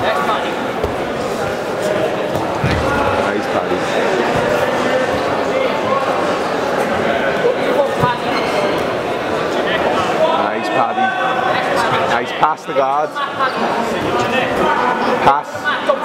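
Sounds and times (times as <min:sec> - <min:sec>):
voices echoing in sports hall: 0:00.0 - 0:16.0.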